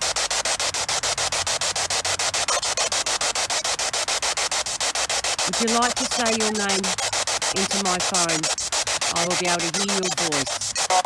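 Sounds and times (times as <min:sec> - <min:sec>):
choppy radio static: 0:00.0 - 0:11.0.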